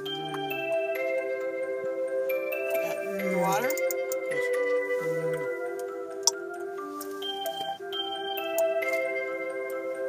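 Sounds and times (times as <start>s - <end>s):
music on a car radio: 0.0s - 10.0s.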